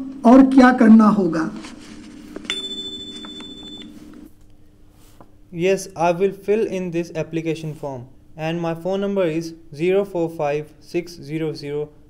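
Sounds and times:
high electronic beep: 0:02.5 - 0:04.0.

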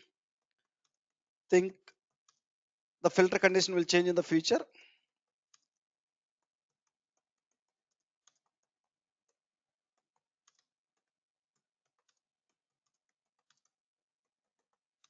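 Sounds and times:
faint keyboard typing: 0:06.7 - 0:15.0.

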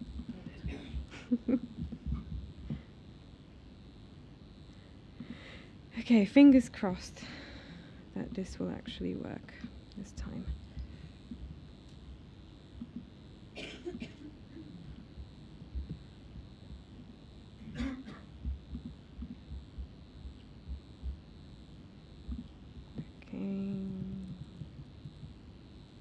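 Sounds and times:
soft low bumps: 0:00.0 - 0:02.9, 0:14.8 - 0:21.4, 0:22.1 - 0:25.4.

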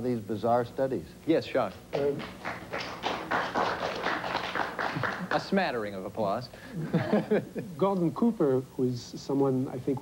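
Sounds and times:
audience applauding: 0:01.9 - 0:05.6.

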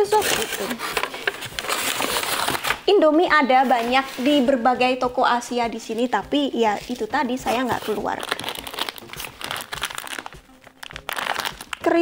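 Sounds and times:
plastic packaging crinkling: 0:00.0 - 0:02.9, 0:06.9 - 0:12.0.

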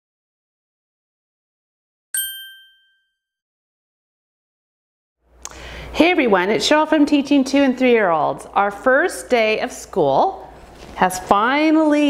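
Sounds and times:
bright bell ding: 0:02.2 - 0:03.2.

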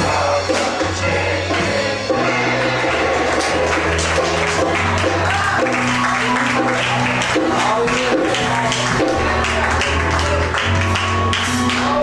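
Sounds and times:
drums beating: 0:00.0 - 0:12.0
low bass notes: 0:00.0 - 0:12.0.

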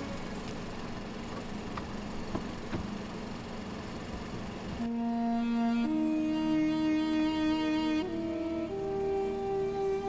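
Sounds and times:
car engine idling: 0:00.0 - 0:10.0
car door clicks: 0:01.3 - 0:03.0.

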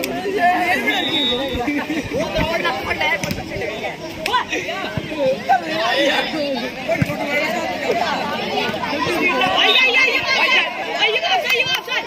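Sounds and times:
boys shouting and chattering: 0:00.0 - 0:12.0.

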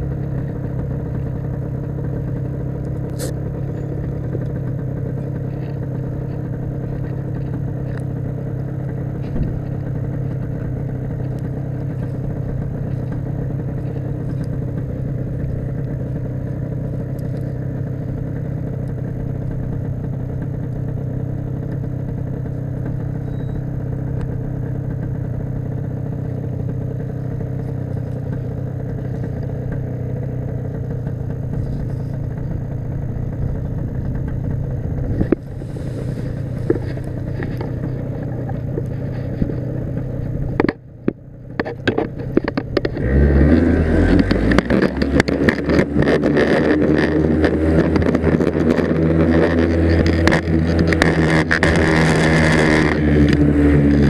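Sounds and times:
paramotor engine idling: 0:00.0 - 0:54.0.

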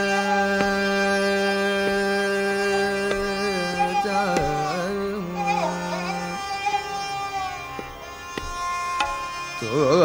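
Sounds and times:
harmonium: 0:00.0 - 0:10.0
tanpura: 0:00.0 - 0:10.0.

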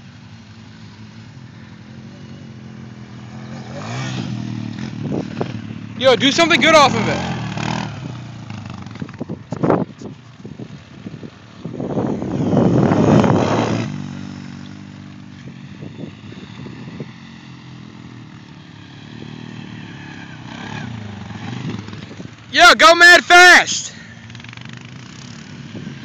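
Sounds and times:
quad bike engines droning: 0:00.0 - 0:26.0.

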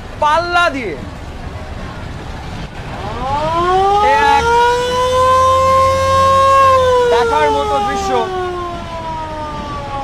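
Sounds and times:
siren wailing: 0:03.0 - 0:10.0.

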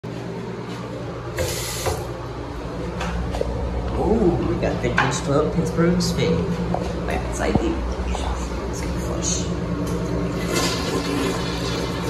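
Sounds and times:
steady low hum: 0:00.0 - 0:12.0
faucet running into sink: 0:10.4 - 0:12.0.

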